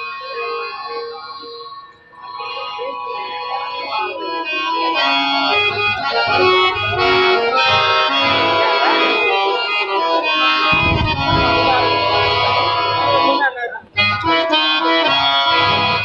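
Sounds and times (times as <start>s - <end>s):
harmonium playing: 0.0s - 16.0s
drum beats: 10.6s - 12.8s.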